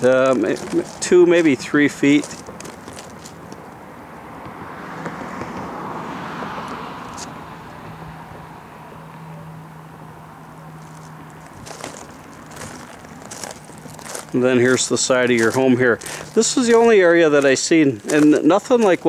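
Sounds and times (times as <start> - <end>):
car passing: 0.0 - 19.0.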